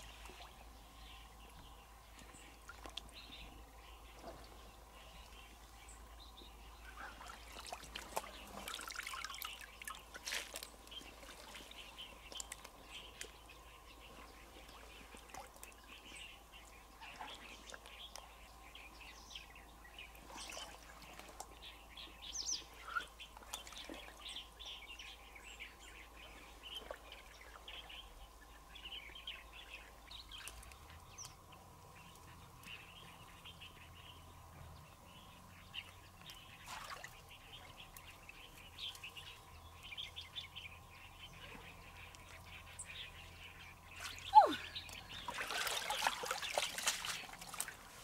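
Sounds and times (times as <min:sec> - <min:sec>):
small birds chirping: 0:00.0 - 0:48.0.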